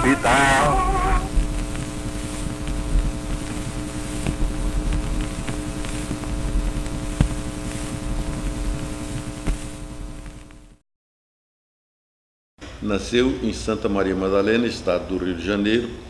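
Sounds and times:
droning hum with low rumble: 0.0 - 10.8.

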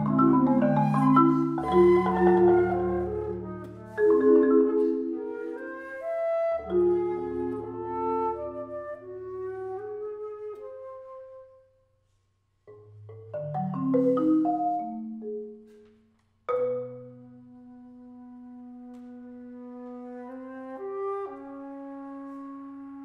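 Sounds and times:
marimba chords: 0.0 - 5.8, 6.6 - 8.6, 12.7 - 17.6
flute: 0.0 - 12.0, 17.3 - 23.0.

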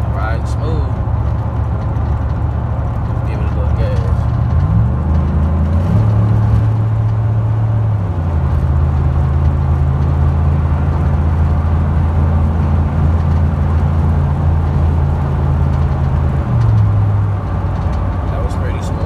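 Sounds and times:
truck engine drone from cab: 0.0 - 19.0.

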